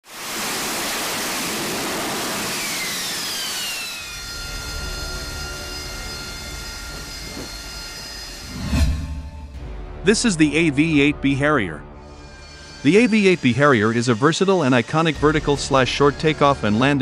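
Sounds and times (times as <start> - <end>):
jet engine roar and whine: 0.1 - 9.5.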